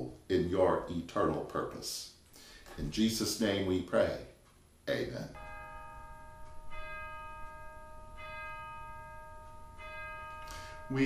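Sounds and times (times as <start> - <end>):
bell ringing: 5.3 - 11.0.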